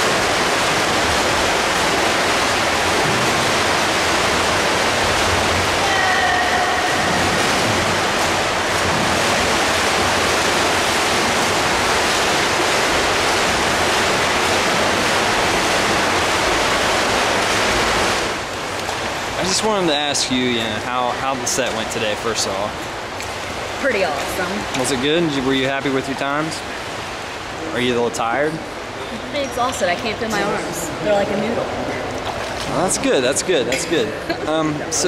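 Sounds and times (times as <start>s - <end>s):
swimmers splashing in pool: 0.0s - 27.9s.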